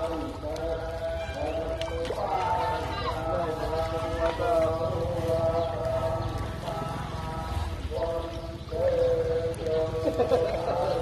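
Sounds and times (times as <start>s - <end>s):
voice holding long notes: 0.0s - 11.0s.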